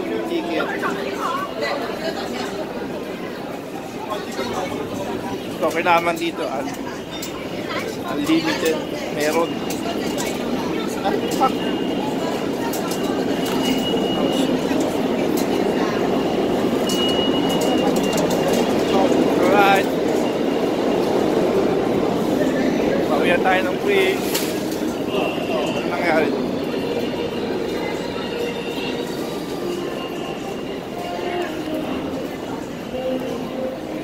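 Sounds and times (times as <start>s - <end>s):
subway train rumble: 0.0s - 34.0s.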